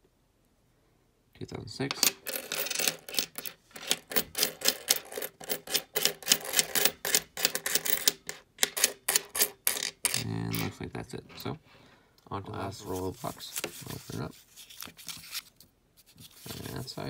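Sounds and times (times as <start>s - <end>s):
coins clinking on tabletop: 1.9s - 10.7s.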